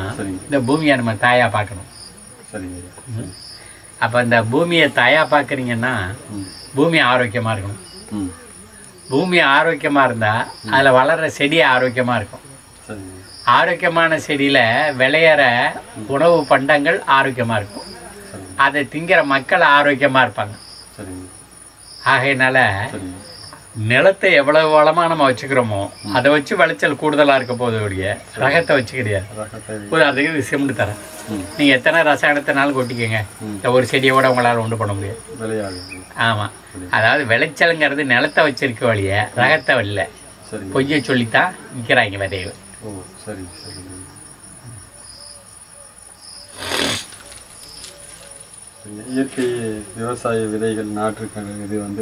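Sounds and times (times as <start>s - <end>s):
crickets chirring: 0.0s - 52.0s
man's voice: 4.0s - 8.5s, 22.1s - 44.8s.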